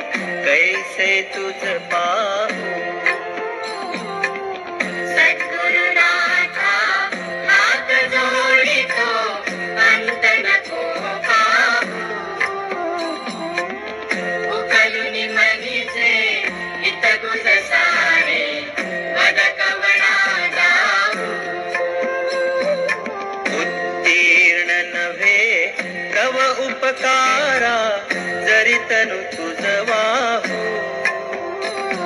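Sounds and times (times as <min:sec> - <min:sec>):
devotional song: 0:00.0 - 0:32.0
instrumental accompaniment: 0:00.0 - 0:32.0.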